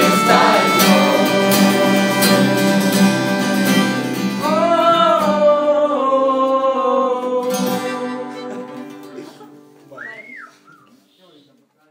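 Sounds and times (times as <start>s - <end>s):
acoustic guitar chord: 0.0s - 5.8s
short whistle rising and falling: 10.0s - 10.9s.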